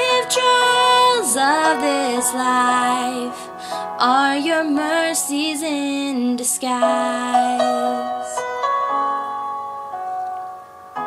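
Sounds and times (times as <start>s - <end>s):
instrumental backing track chords: 0.0s - 11.0s.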